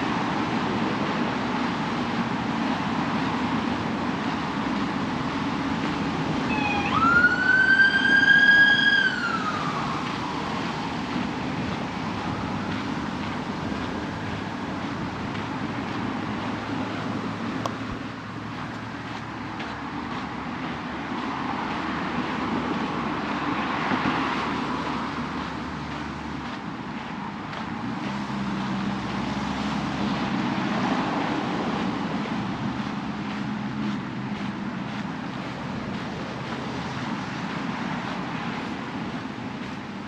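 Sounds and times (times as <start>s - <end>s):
cars passing: 0.0s - 40.0s
low engine hum: 0.0s - 40.0s.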